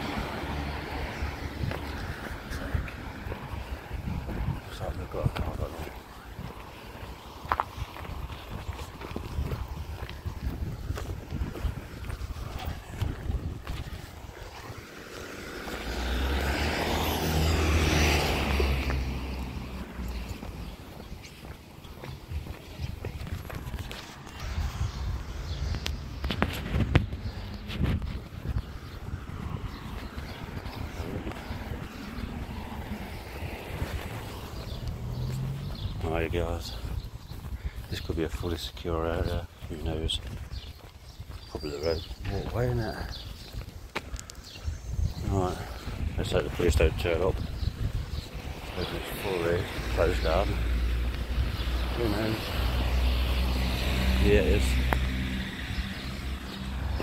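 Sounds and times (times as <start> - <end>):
car passing: 0.0 - 11.0, 11.6 - 40.7, 45.2 - 57.0
footsteps on pavement: 0.0 - 57.0
low street rumble: 0.0 - 57.0.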